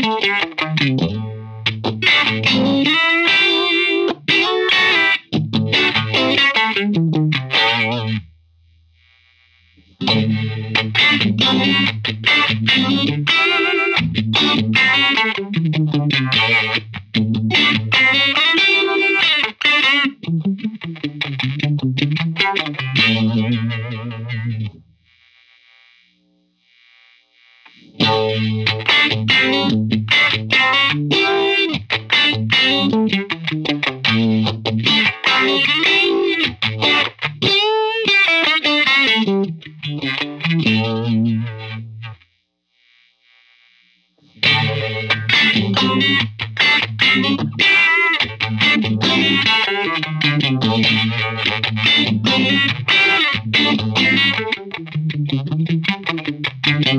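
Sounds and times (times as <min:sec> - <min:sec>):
electric guitar through phaser: 0:00.0 - 0:08.2, 0:09.9 - 0:24.8, 0:27.7 - 0:42.2, 0:44.3 - 0:56.9.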